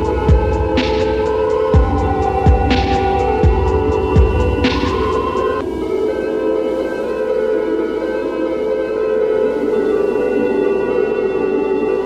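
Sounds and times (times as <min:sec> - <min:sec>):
dark synthesizer pad chords droning: 0:00.0 - 0:12.0.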